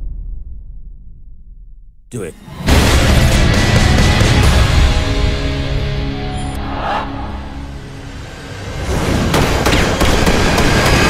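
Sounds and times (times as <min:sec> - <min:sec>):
trailer music: 0:00.0 - 0:11.0
deep rumble: 0:04.2 - 0:09.6.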